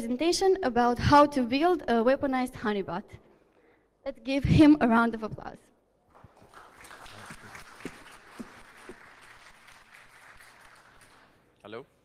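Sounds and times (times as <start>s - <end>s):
audience applauding: 6.1s - 11.4s
footsteps on stage: 7.2s - 9.2s.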